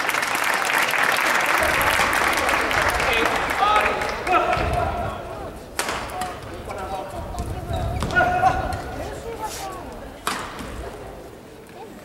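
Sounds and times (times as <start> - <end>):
footsteps on court: 3.1 - 10.9
racket striking shuttlecock: 5.8 - 6.4, 10.2 - 10.7.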